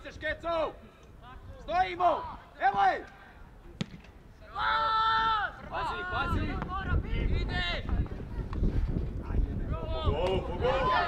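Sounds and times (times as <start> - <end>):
loud long shout: 4.4 - 7.0, 9.8 - 11.0.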